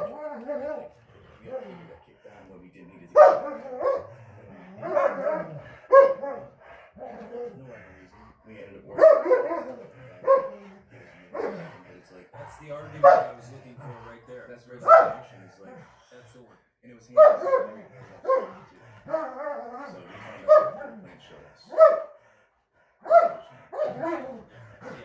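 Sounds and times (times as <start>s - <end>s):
dogs barking: 0.0s - 1.7s, 3.0s - 7.7s, 8.8s - 14.0s, 14.7s - 15.8s, 17.1s - 22.2s, 23.0s - 25.0s.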